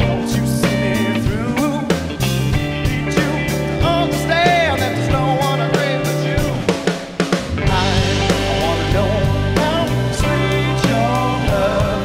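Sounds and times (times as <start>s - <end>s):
blues rock band playing: 0.0s - 12.0s
drum hits: 2.6s - 12.0s.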